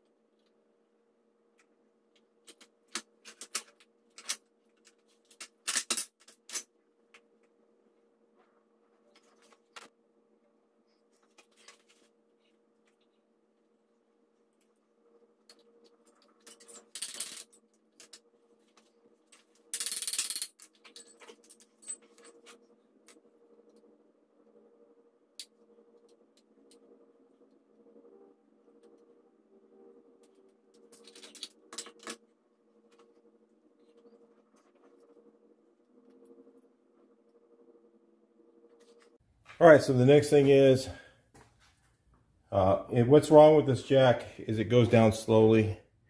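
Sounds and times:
faint steady hum: 0.0 - 46.0
steel parts clinking and rattling: 16.1 - 18.2.

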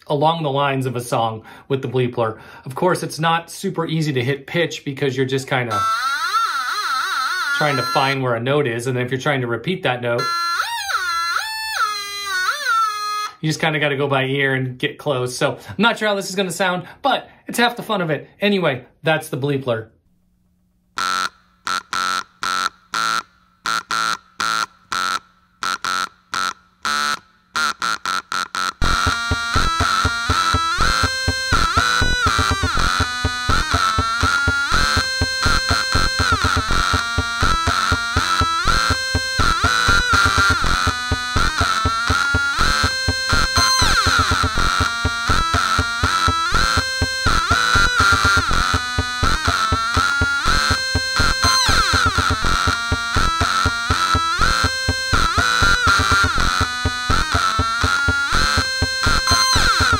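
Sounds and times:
electronic tone beeps: 28.8 - 59.9
layered electronic game-like tune: 28.8 - 59.9.

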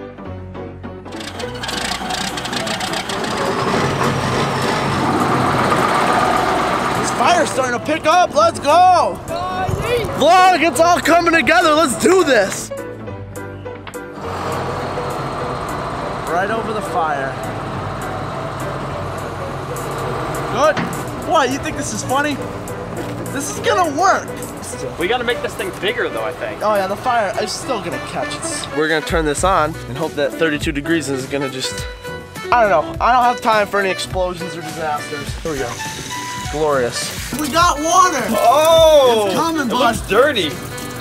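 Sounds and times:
background music: 0.0 - 41.0
excavator diesel engine clattering: 1.1 - 12.0, 14.2 - 29.6.

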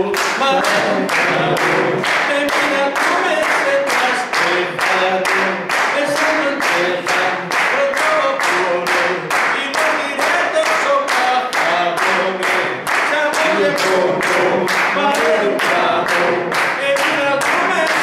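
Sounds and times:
group of voices singing: 0.0 - 18.0
rhythmic hand-clapping: 0.0 - 18.0.

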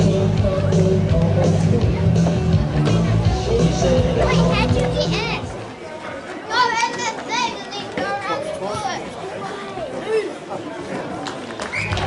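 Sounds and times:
music with heavy bass: 0.0 - 5.4.

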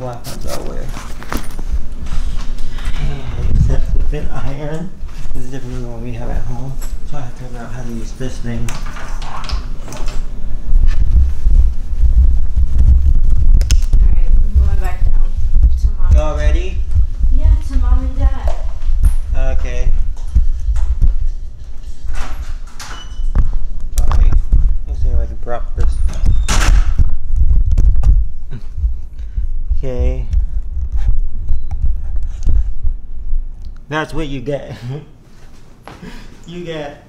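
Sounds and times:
heavy low rumble: 1.6 - 4.6, 10.3 - 22.6, 23.3 - 34.4.

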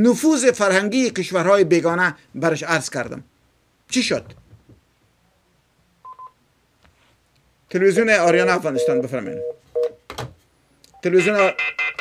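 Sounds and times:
electronic telephone beeps: 6.0 - 6.4, 8.3 - 10.0, 11.0 - 12.0.

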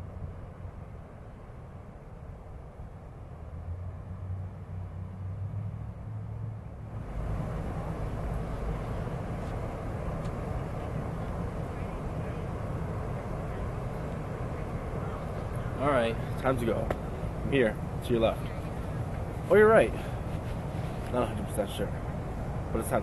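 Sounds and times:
low outdoor rumble: 0.0 - 23.0.

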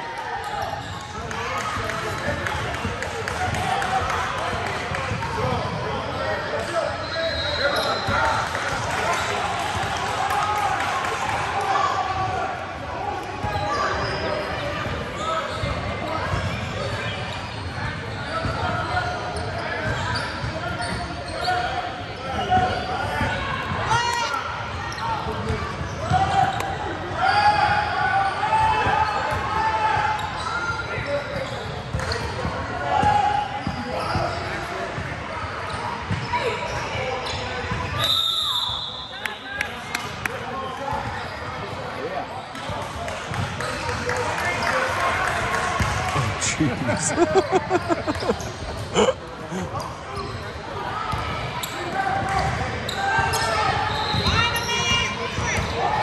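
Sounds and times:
spectators talking: 38.8 - 56.0.

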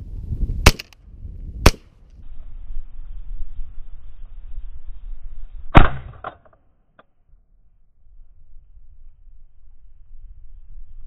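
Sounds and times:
wind rumble on microphone: 0.0 - 6.2, 7.3 - 11.0
shotgun shot: 0.6 - 1.0, 1.6 - 1.9, 5.7 - 6.4.

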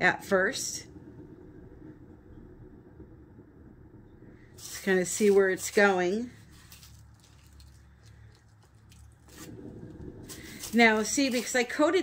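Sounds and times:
turntable rumble: 0.0 - 6.7, 9.1 - 12.0.

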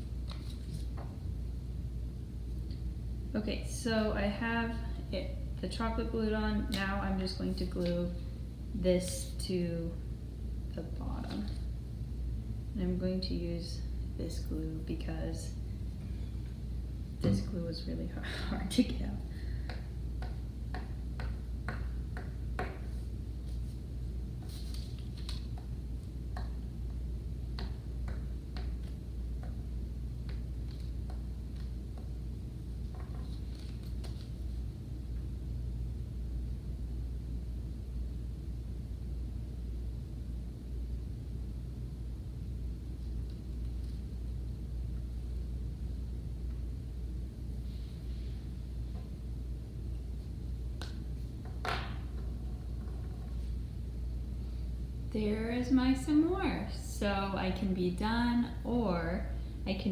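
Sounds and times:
low room hum: 0.0 - 59.9
paper rustling: 24.4 - 25.5.

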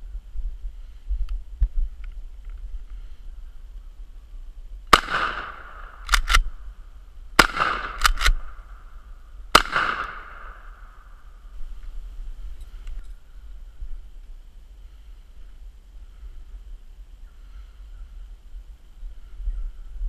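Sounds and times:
shotgun shots with echo: 4.9 - 6.5, 7.4 - 8.7, 9.5 - 11.0
shotgun pump racking clack: 6.0 - 6.5, 8.0 - 8.4.

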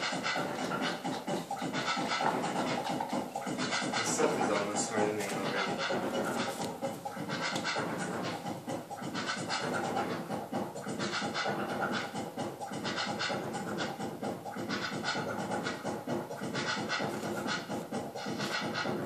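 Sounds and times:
wooden sticks scraping: 1.8 - 8.4.

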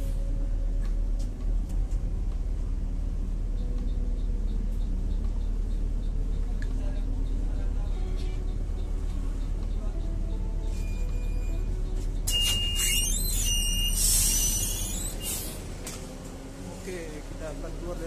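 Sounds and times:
bus engine running: 0.0 - 18.0
electronic warning beeps: 8.4 - 15.4.

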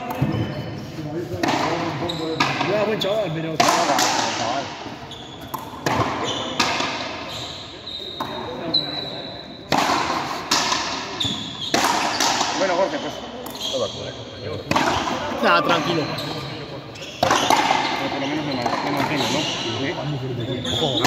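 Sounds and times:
rackets striking ball: 1.3 - 7.3, 9.6 - 13.8, 14.6 - 16.0, 17.0 - 19.8
spectators' voices: 14.3 - 21.0.

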